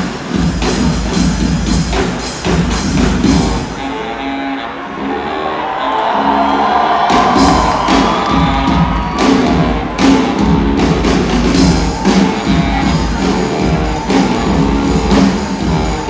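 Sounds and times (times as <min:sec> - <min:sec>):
brass band playing: 0:00.0 - 0:16.0.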